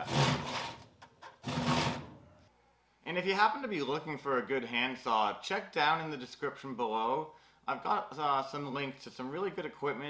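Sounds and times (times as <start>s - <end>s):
handsaw cutting wood: 0.0s - 2.1s.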